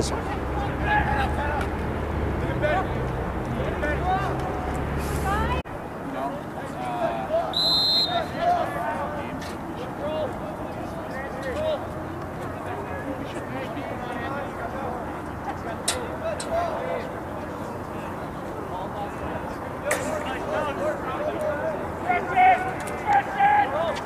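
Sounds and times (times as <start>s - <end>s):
people calling and shouting: 0.0s - 24.0s
short high whistle blast: 7.6s - 8.2s.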